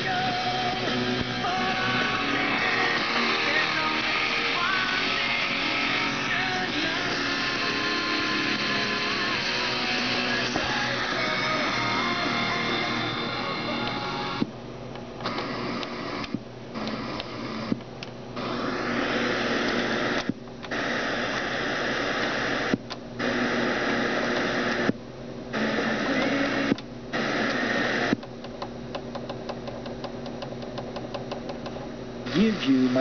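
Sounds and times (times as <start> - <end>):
radio static hiss: 0.0 - 29.0, 29.9 - 33.0.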